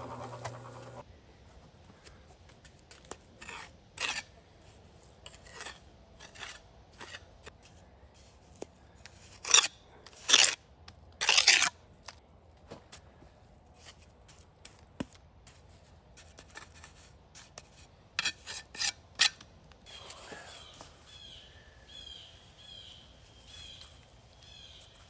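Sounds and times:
trowel scraping mortar on stone: 2.7 - 7.8, 8.5 - 10.6, 11.2 - 12.2, 16.2 - 19.5.

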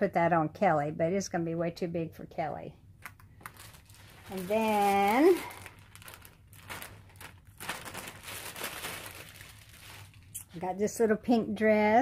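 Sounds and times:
plastic packaging crinkling: 3.0 - 10.6.

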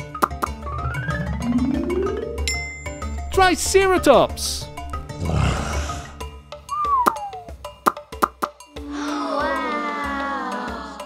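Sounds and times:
light children's music: 0.0 - 5.2, 5.8 - 11.0
cartoon dinosaur growl: 5.1 - 6.3
gliding whistle: 6.7 - 7.5.

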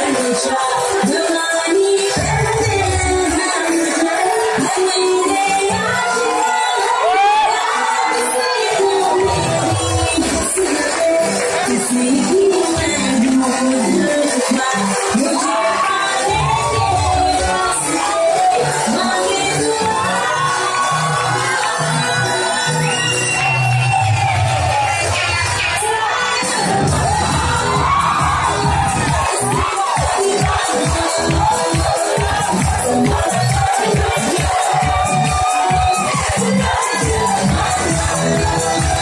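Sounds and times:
crowd cheering and shouting: 0.0 - 39.0
loud dance music: 0.0 - 39.0
heavy bass beat: 26.6 - 39.0.

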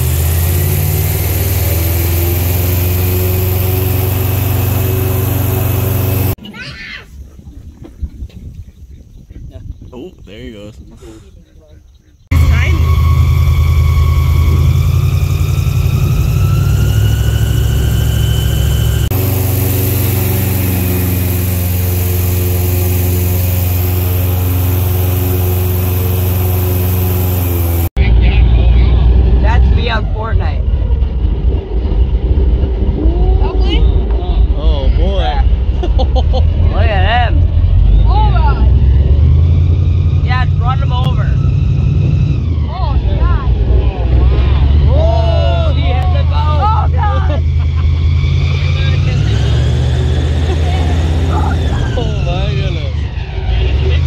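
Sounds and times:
airboat engine and propeller: 0.0 - 6.4, 12.3 - 44.9, 45.7 - 54.0.

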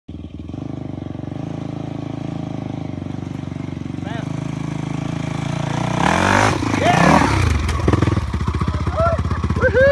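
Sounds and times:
dirt bike engine revving: 0.3 - 9.9.

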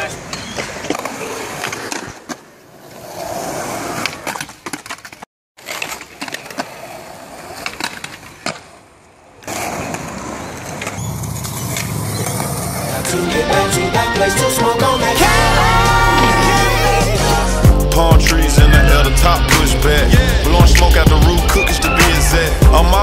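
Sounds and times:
skateboards clacking: 0.0 - 17.4
skateboard wheels rolling on concrete: 0.0 - 17.6.

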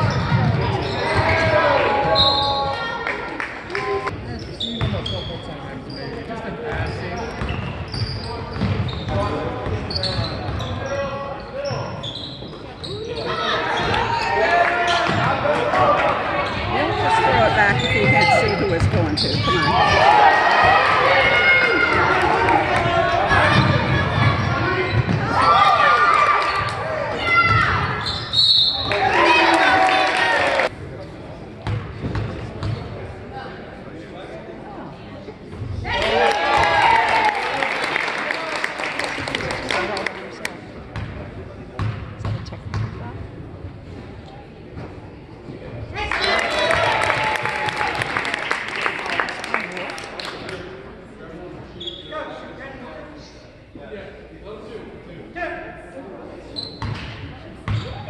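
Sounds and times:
sneakers squeaking: 0.0 - 2.9, 4.2 - 15.4, 16.3 - 22.0, 23.4 - 29.4, 31.0 - 32.9, 41.8 - 43.0, 51.7 - 52.4, 56.4 - 58.0.

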